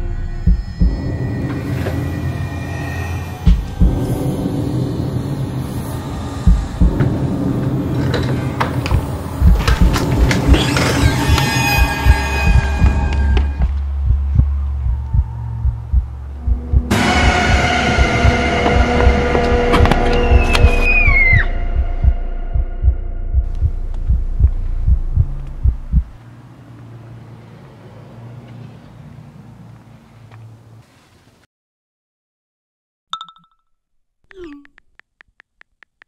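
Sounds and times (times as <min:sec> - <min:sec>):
horror film score: 0:00.0 - 0:26.2.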